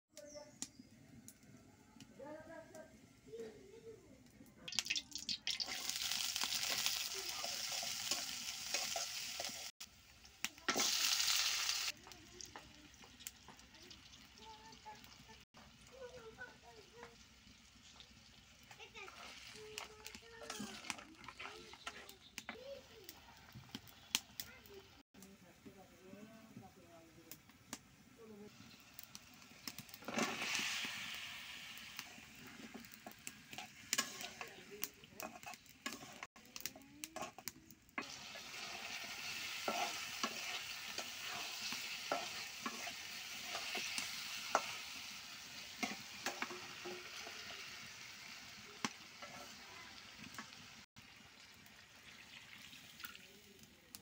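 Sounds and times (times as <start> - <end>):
fish frying in hot oil: 4.6 - 25.0, 26.8 - 54.0
spatula stirring: 4.8 - 9.7, 16.4 - 24.2, 28.6 - 31.2, 31.9 - 47.9.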